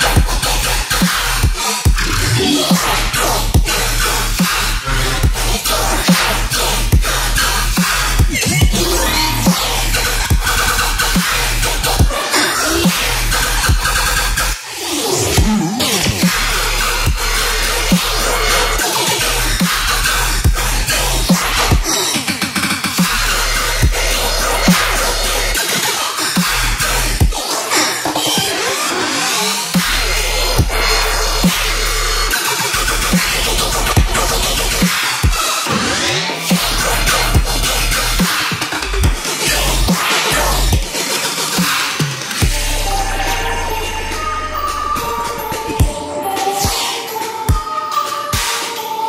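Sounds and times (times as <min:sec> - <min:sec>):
sustained sub-bass: 0:00.0 - 0:12.1, 0:15.4 - 0:21.9, 0:23.0 - 0:25.6, 0:26.4 - 0:27.3, 0:29.8 - 0:34.9, 0:36.6 - 0:38.3, 0:42.4 - 0:45.6
distorted synth bass: 0:00.0 - 0:14.6, 0:15.4 - 0:22.0, 0:23.0 - 0:25.6, 0:26.4 - 0:27.3, 0:29.8 - 0:34.9, 0:36.5 - 0:40.8, 0:42.4 - 0:46.0.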